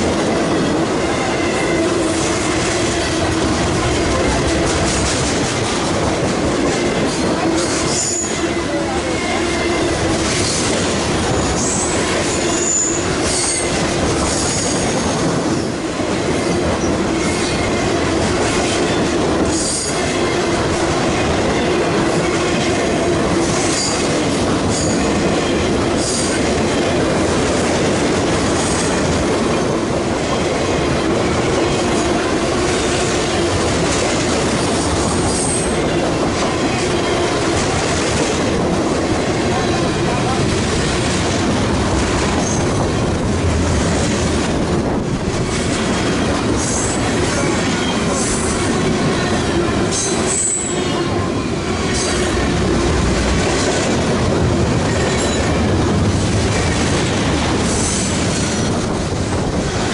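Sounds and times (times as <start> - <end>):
train wheels rumbling on rail: 0.0 - 59.9
high-pitched wheel squeals: 11.3 - 13.8, 50.0 - 51.0.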